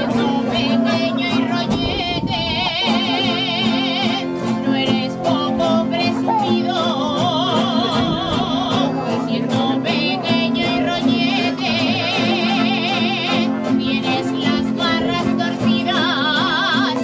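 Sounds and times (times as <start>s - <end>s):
accordion: 0.0s - 17.0s
strummed guitars: 0.0s - 17.0s
woman singing with vibrato: 0.0s - 17.0s.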